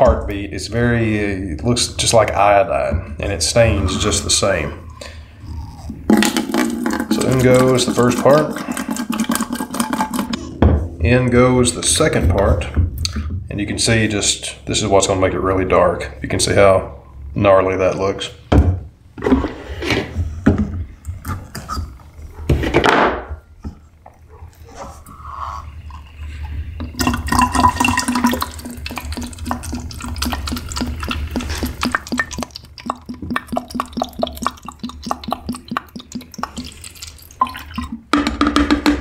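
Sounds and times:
liquid pouring into plastic bottle: 0:05.9 - 0:10.3, 0:26.3 - 0:38.1.

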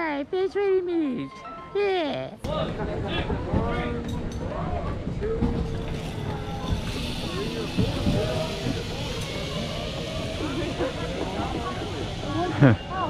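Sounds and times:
people talking: 0:00.0 - 0:04.0, 0:07.2 - 0:13.0
steady high hiss: 0:06.0 - 0:13.0.

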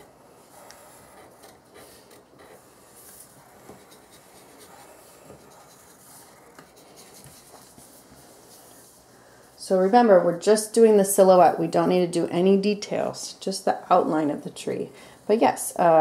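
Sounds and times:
hands tapping and rubbing paper: 0:00.0 - 0:08.9
pencils scratching on paper: 0:00.0 - 0:12.6.

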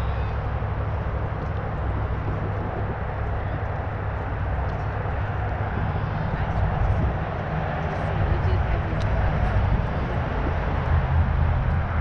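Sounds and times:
wind rumble on microphone: 0:00.0 - 0:12.0.

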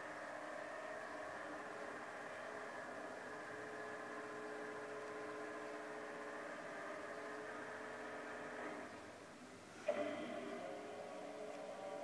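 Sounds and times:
steady electric hum: 0:00.0 - 0:12.0.

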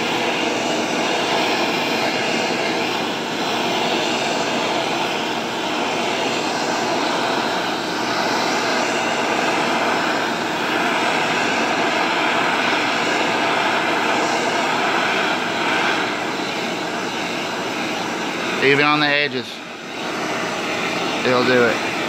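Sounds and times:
gas torch flame hissing: 0:00.0 - 0:22.0.

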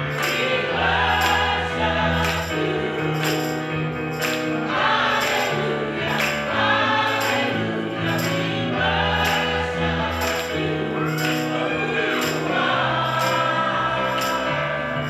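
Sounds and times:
choir singing in harmony: 0:00.0 - 0:15.0
organ: 0:00.0 - 0:15.0.

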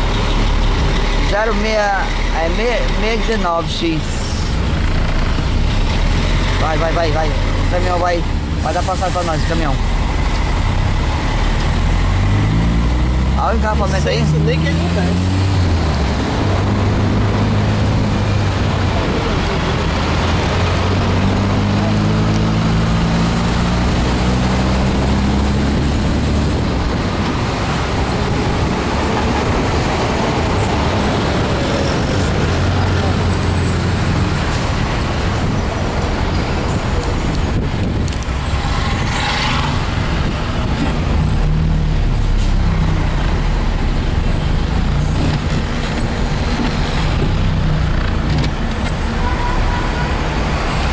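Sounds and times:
car engine and tyre noise: 0:00.0 - 0:50.9.

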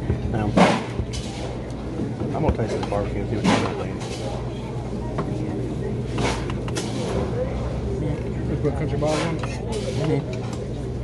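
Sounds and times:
diners chattering: 0:00.0 - 0:11.0
steady low hum: 0:00.0 - 0:11.0.

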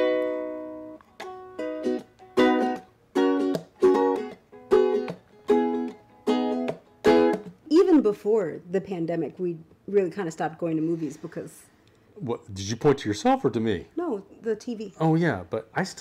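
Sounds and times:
ukulele strumming chords: 0:00.0 - 0:08.0.

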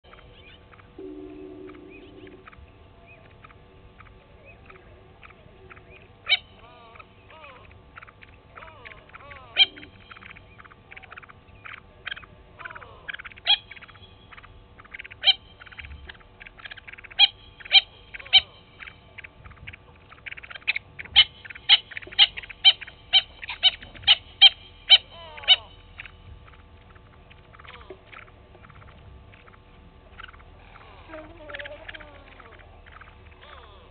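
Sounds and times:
other birds chirping: 0:00.0 - 0:33.9
spurfowl calling: 0:00.0 - 0:33.9.

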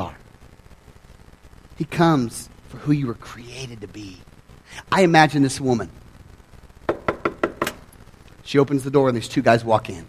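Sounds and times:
knocking on wood: 0:06.9 - 0:07.8.

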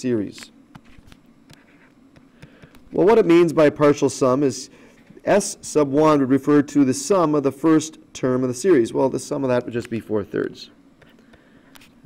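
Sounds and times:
stylus scratching on tablet: 0:00.8 - 0:02.6.

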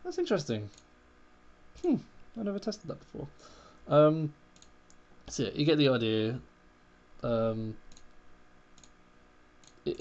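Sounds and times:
man talking: 0:00.0 - 0:00.7, 0:01.8 - 0:04.4, 0:05.3 - 0:06.5, 0:07.2 - 0:07.8
computer mouse clicks: 0:04.5 - 0:05.0, 0:07.9 - 0:09.0, 0:09.6 - 0:09.8.

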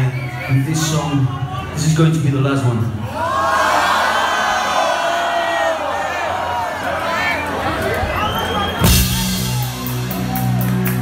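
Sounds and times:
crowd cheering and screaming: 0:03.0 - 0:11.0.

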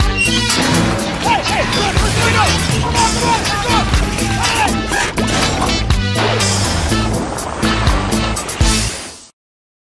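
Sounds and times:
drum hits: 0:00.0 - 0:08.2
advert music with bass line: 0:00.0 - 0:08.9.

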